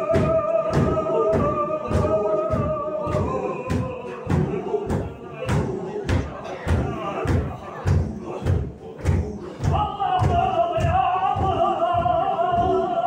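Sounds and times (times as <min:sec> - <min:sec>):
men chanting in unison: 0:00.0 - 0:13.0.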